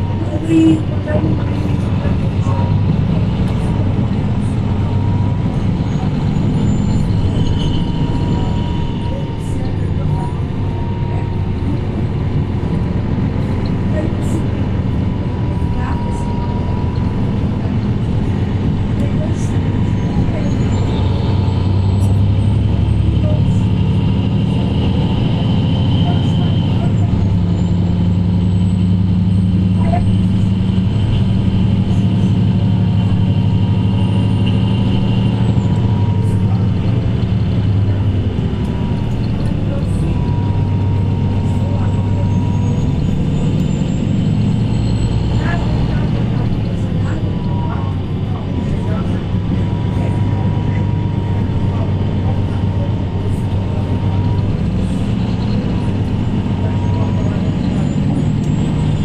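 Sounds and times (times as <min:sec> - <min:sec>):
bus diesel engine droning: 0:00.0 - 0:59.0.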